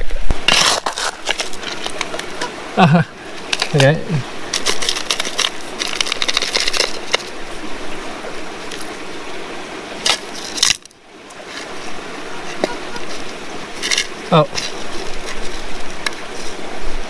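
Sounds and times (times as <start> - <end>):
gravel rattling poured by hand: 0.5 - 2.5, 3.3 - 7.6, 10.0 - 11.9, 12.5 - 16.6
metal detector zip signal: 12.3 - 13.2.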